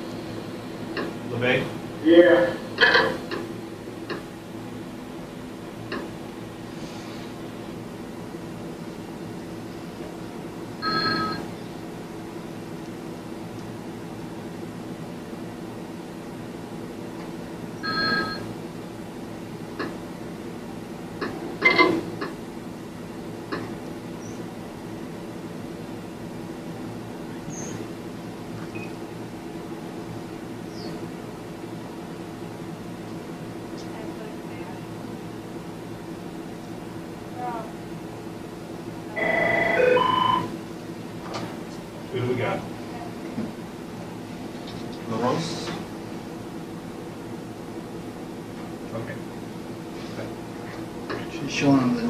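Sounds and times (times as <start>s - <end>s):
low electrical hum: 0.0s - 52.0s
electronic multi-tone ring: 10.8s - 11.5s, 17.8s - 18.4s, 39.2s - 40.5s.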